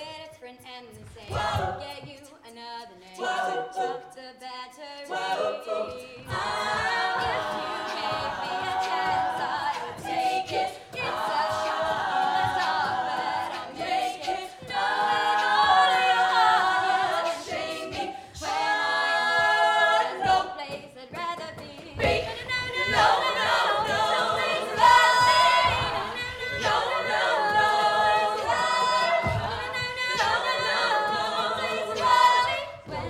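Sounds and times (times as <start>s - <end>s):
women singing in close harmony: 0.0s - 33.0s.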